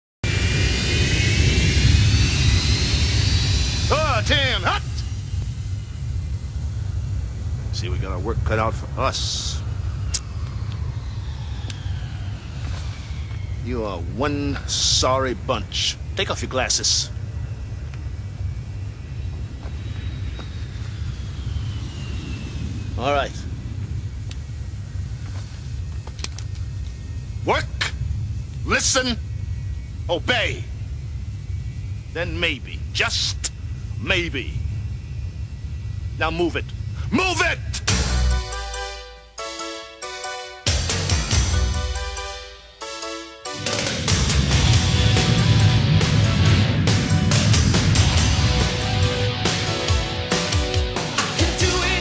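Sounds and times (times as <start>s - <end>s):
jet engines whining and rumbling: 0.2s - 52.0s.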